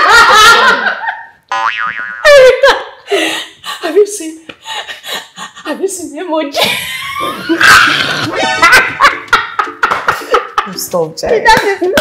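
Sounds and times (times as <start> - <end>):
people talking: 3.7 - 4.5, 5.5 - 7.4, 10.6 - 12.0
woman laughing loudly: 6.6 - 10.8.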